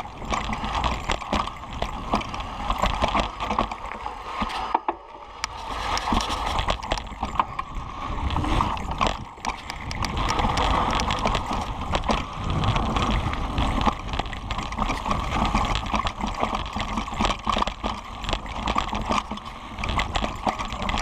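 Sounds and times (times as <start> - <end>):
bike clattering over bumps: 0.0 - 21.0
steady rumble: 0.0 - 21.0.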